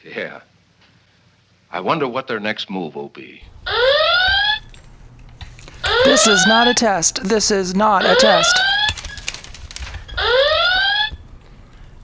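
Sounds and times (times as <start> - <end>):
electronic toy whoop alarm: 3.7 - 4.7, 5.8 - 6.8, 10.1 - 11.2.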